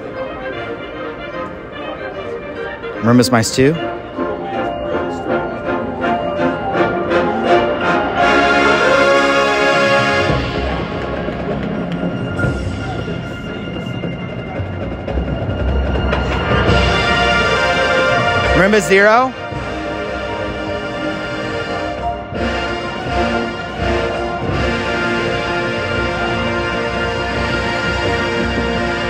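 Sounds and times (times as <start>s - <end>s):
marching band playing: 0.0s - 29.0s.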